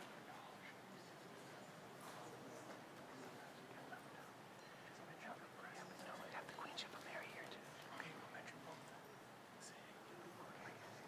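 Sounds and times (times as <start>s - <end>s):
murmured voices and whispering: 0.0s - 11.0s.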